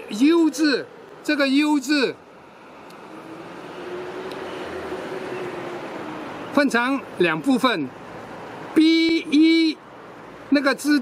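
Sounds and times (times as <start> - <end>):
vehicle noise with faint hum: 0.0 - 11.0.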